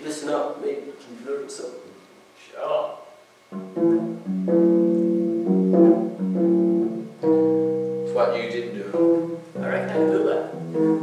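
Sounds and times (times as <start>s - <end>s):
electric bass guitar notes: 3.5s - 11.0s.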